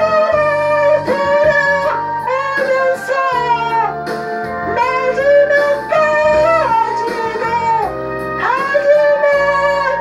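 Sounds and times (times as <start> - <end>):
man singing into karaoke microphone: 0.0 - 3.6, 4.7 - 10.0
backing track: 0.0 - 10.0.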